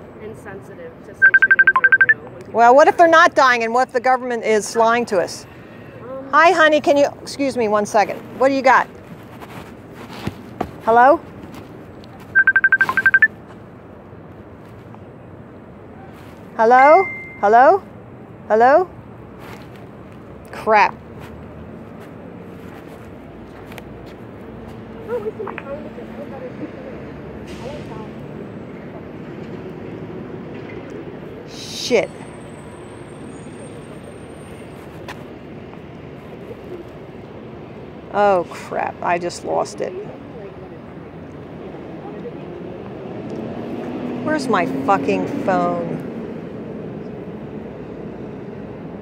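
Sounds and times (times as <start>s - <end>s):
street traffic rumble: 0.0s - 49.0s
mobile phone short beeps: 1.2s - 2.2s, 12.3s - 13.3s, 16.8s - 17.5s.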